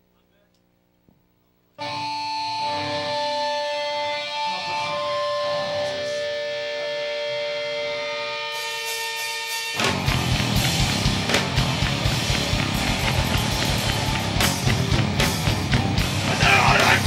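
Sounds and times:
electric guitar chords ringing: 1.8s - 17.0s.

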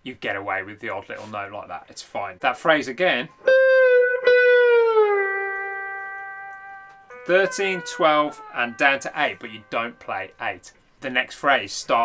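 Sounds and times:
slide electric guitar note: 3.4s - 10.5s.

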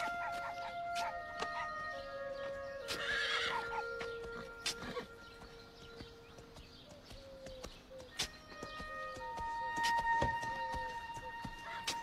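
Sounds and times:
soft background music: 0.0s - 12.0s
horse whinnying: 3.0s - 3.6s.

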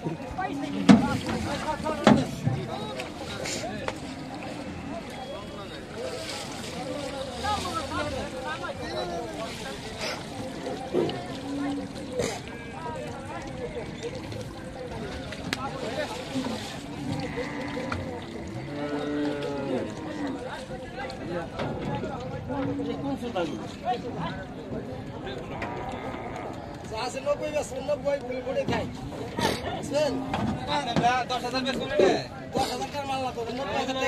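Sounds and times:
men talking: 0.0s - 25.6s, 26.8s - 34.0s
cow mooing: 16.9s - 20.4s, 25.5s - 26.6s.

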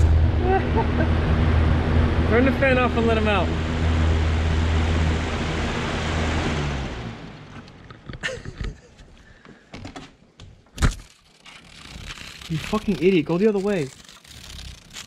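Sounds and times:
box fan humming: 0.0s - 8.2s.

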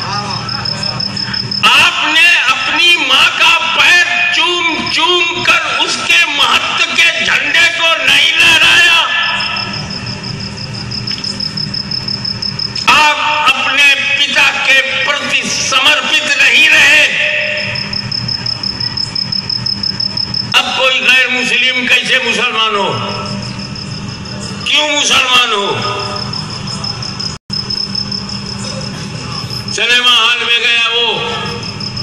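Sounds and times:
loudspeaker speech: 0.0s - 9.8s, 12.9s - 17.9s, 20.6s - 23.4s, 24.6s - 26.3s, 28.9s - 31.7s
pulsing high tone: 0.0s - 15.4s, 16.0s - 32.0s
low mechanical hum: 0.0s - 32.0s
outdoor crowd noise: 0.0s - 32.0s
low hum: 17.5s - 20.6s.

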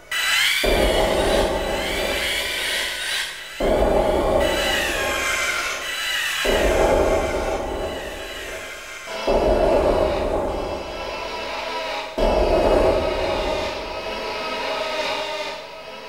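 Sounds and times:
distorted grinding noise: 0.0s - 15.4s.

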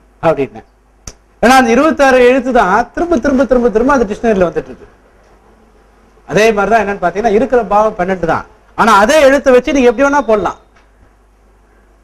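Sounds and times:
man speaking: 1.4s - 4.9s, 6.3s - 10.6s.

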